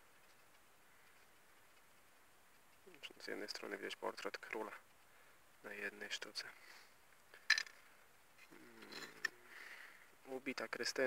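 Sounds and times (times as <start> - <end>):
soft rustle: 0.0 - 11.0.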